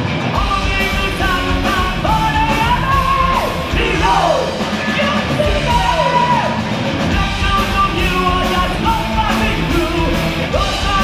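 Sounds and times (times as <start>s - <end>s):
heavy metal band playing live: 0.0s - 11.0s.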